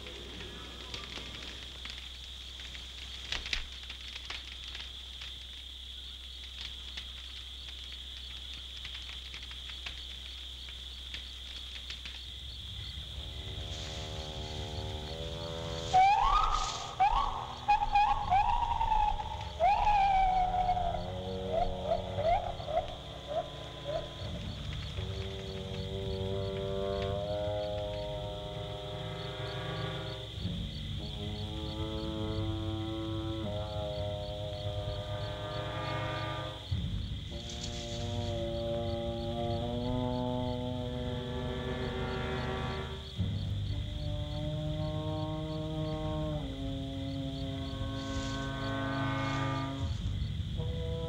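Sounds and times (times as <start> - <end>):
faint crackles: 0.0 - 43.6, 46.4 - 50.9
insect drone: 0.0 - 51.0
low sustained music: 12.6 - 51.0.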